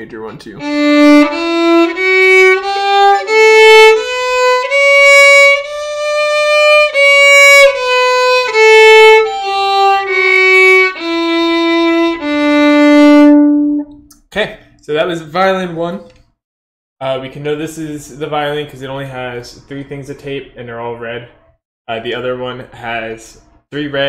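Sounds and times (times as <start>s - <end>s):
violin bowed slowly: 0.6s - 13.9s.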